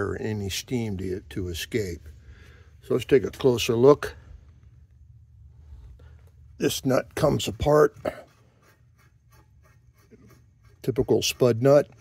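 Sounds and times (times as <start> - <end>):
metal nut scraping on threads: 7.2 - 12.0.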